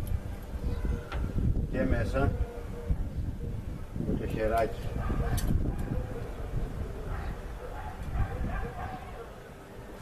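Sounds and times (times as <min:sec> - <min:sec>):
low wind rumble on microphone: 0:00.0 - 0:10.0.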